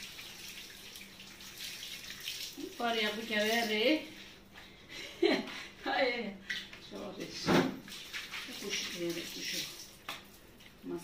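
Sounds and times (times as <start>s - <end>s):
tap water splashing on tiles: 0.0s - 2.8s, 7.4s - 10.8s
woman's voice: 2.6s - 4.2s, 5.8s - 7.8s, 8.5s - 9.8s.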